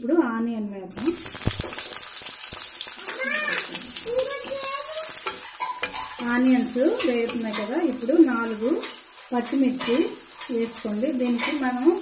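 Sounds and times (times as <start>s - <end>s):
onions sizzling in hot oil: 0.9s - 12.0s
spatula stirring in pan: 1.2s - 12.0s.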